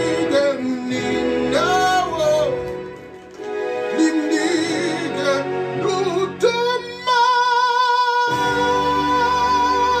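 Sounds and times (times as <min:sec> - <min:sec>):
man singing gospel: 0:00.0 - 0:02.8, 0:03.8 - 0:10.0.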